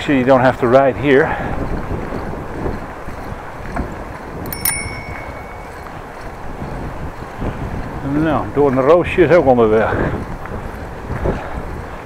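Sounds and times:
bicycle rolling noise: 0.0s - 12.0s
wind: 0.0s - 12.0s
bicycle bell ring: 4.4s - 6.6s.

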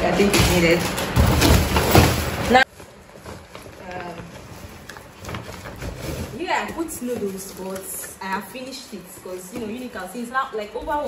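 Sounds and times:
bags and packaging rustling: 0.0s - 11.0s.

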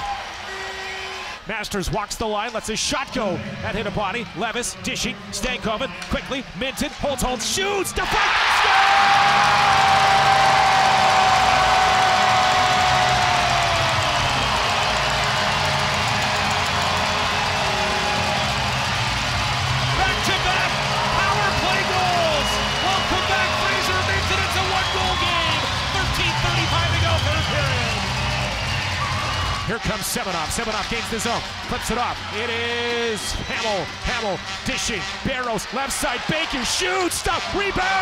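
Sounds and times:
crowd cheering: 0.0s - 1.5s, 2.5s - 38.0s
goal horn tone: 0.4s - 1.4s, 33.4s - 35.7s
arena music: 9.0s - 36.6s.

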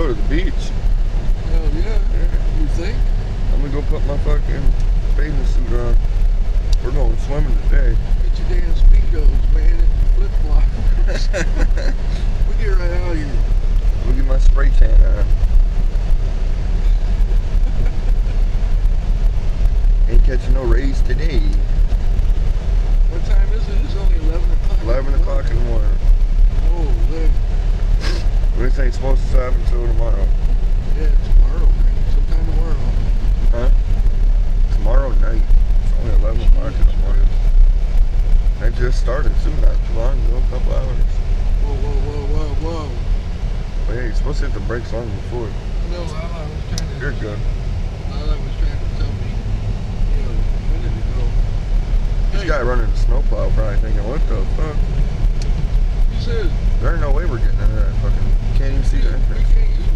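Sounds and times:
car engine and tyres rumbling: 0.0s - 59.9s
indistinct voices: 0.0s - 59.9s.

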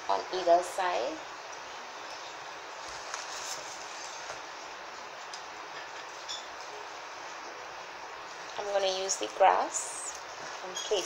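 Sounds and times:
room noise hiss: 0.0s - 11.0s
flower stems rustling: 2.1s - 4.5s.

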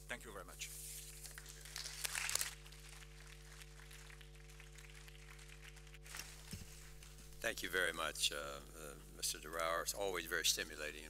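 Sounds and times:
steady low hum: 0.0s - 11.0s
applause: 2.6s - 6.4s.

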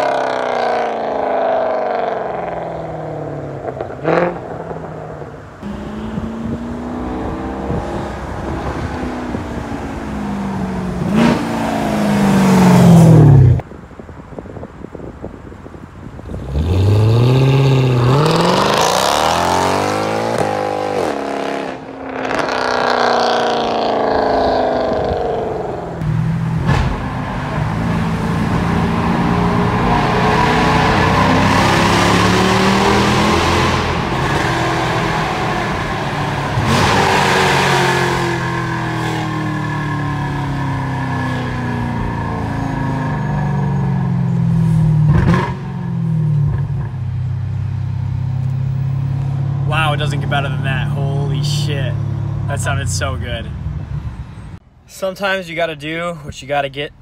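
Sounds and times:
car engine revving: 0.0s - 13.6s, 16.3s - 54.6s.

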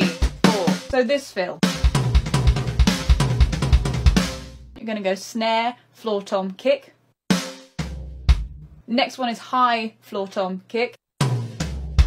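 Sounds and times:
electronic drum kit fill: 0.0s - 1.0s, 1.6s - 4.8s, 7.3s - 8.8s, 11.2s - 12.0s.

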